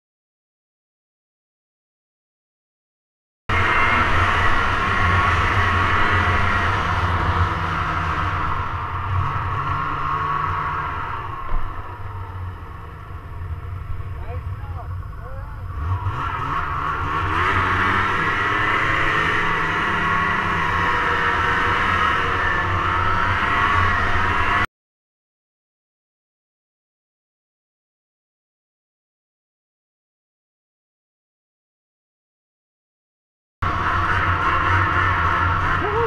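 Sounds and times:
snowmobile engine revving: 0:03.5 - 0:24.7, 0:33.6 - 0:36.0.

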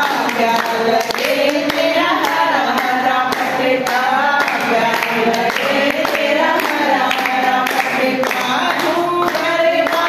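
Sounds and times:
hand clapping: 0:00.0 - 0:10.0
voices singing: 0:00.0 - 0:10.0.

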